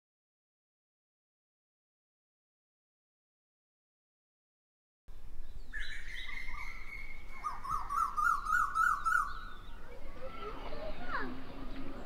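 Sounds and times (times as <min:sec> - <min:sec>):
high bird chirps: 0:05.5 - 0:09.9
bird wavering call: 0:05.7 - 0:09.8.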